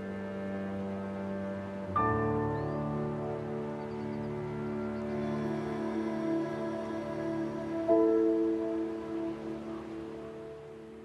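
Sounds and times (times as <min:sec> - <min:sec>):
sombre background music chords: 0:00.0 - 0:11.0.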